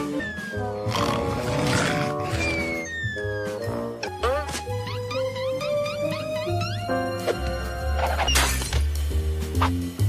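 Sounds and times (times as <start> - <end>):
cartoon music with pulsing bass: 0.0 - 8.4.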